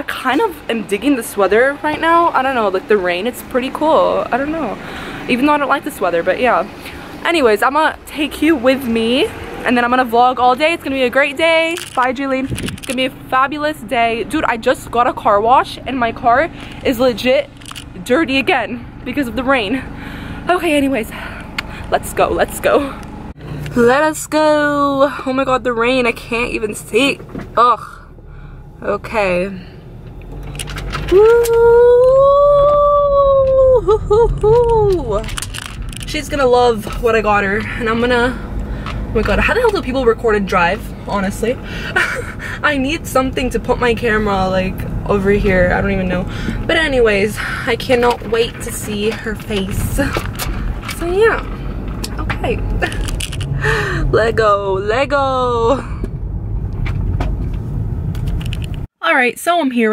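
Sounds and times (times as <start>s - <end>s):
low car cabin rumble: 0.0s - 58.9s
woman whooping: 31.1s - 35.2s.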